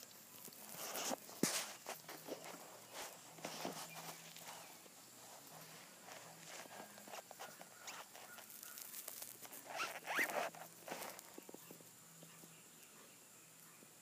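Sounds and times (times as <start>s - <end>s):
squirrel gnawing and chewing: 0.0s - 13.0s.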